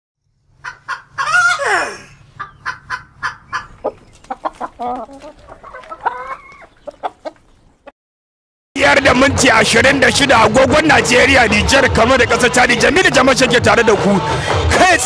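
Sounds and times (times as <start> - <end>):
chickens clucking: 0.5 - 7.9.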